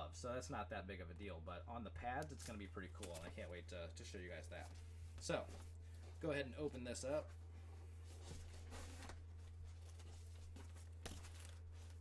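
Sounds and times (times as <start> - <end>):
faint rustling and handling: 2.2 - 12.0.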